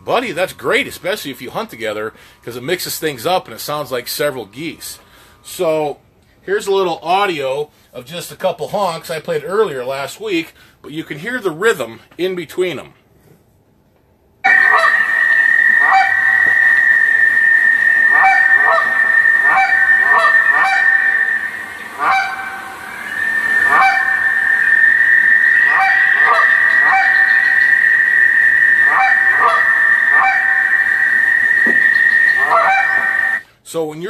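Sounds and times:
goose honks and clucks: 0:14.5 - 0:33.4
steady high-pitched tone: 0:14.5 - 0:33.4.

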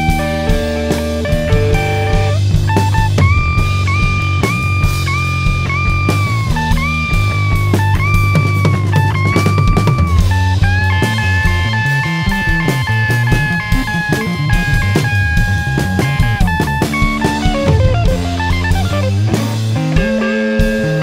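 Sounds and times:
bass line: 0:00.0 - 0:21.0
drums and cymbals: 0:00.0 - 0:21.0
electric guitar: 0:00.0 - 0:21.0
psychedelic rock band playing: 0:00.0 - 0:21.0.

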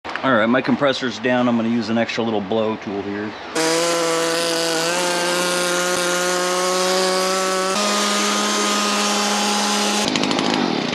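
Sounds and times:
handheld blower motor whine: 0:03.6 - 0:10.7.

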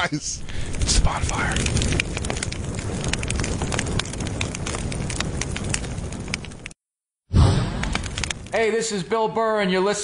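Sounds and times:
fire crackling: 0:00.0 - 0:09.9.

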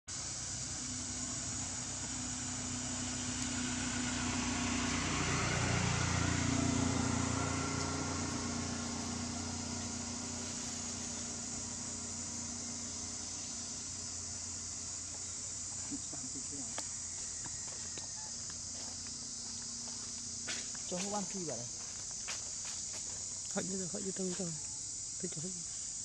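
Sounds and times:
passing motor vehicle hum: 0:00.1 - 0:22.8
high drone of insects: 0:00.1 - 0:26.0.

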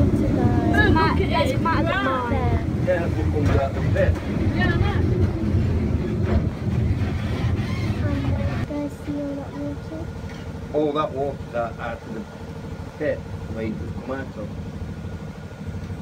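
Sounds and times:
people talking: 0:00.0 - 0:05.4, 0:07.9 - 0:10.1, 0:10.8 - 0:12.2, 0:13.0 - 0:14.5
train rumbling: 0:00.0 - 0:12.2.

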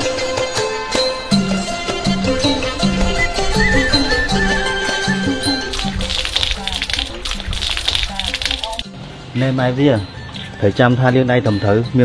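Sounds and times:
music: 0:00.0 - 0:12.0
water splashing onto hands: 0:05.3 - 0:08.9.

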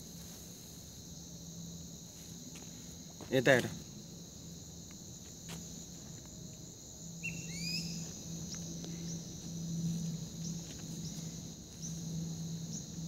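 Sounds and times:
crickets and insects chirring: 0:00.0 - 0:13.0.

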